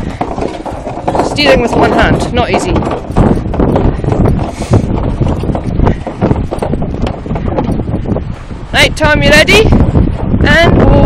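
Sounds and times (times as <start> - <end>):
horse hoofbeats on snow: 0.0 - 11.0
wind buffeting microphone: 0.0 - 11.0.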